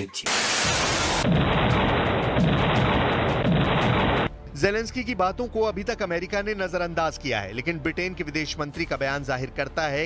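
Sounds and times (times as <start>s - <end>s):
low thuds: 1.2s - 4.3s.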